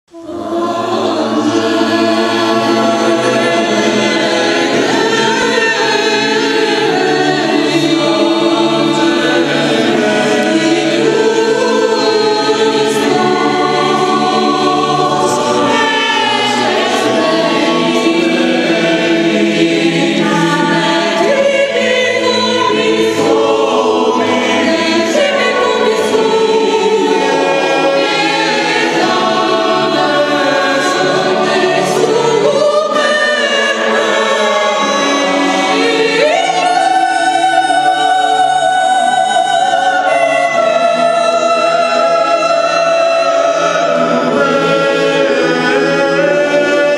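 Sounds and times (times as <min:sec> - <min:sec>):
choir singing a carol: 0:00.1 - 0:46.9.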